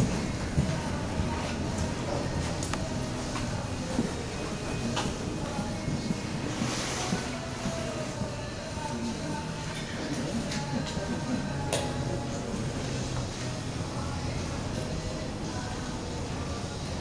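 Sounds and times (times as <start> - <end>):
indistinct background voices: 0.0 - 17.0.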